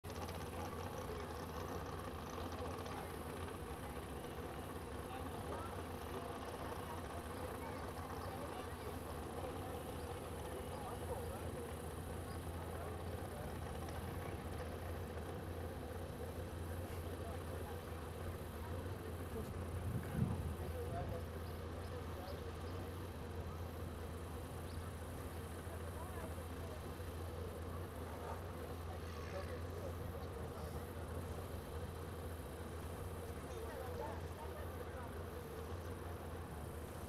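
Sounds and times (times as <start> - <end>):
boat engine idling: 0.0 - 37.0.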